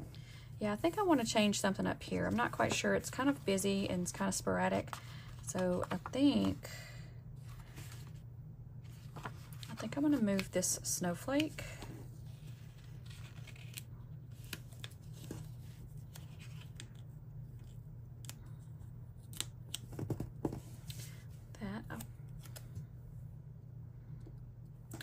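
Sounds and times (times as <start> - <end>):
low steady background hum: 0.0 - 25.0.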